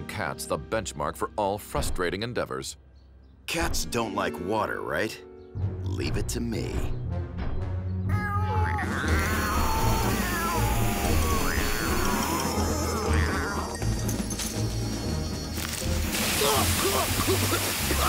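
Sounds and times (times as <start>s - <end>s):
background music: 0.0s - 18.0s
cartoon cats meowing: 8.1s - 13.8s
hose spraying water: 15.6s - 18.0s.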